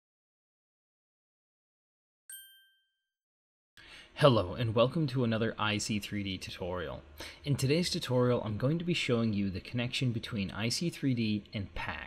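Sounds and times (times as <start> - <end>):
bright ding: 2.3 - 3.1.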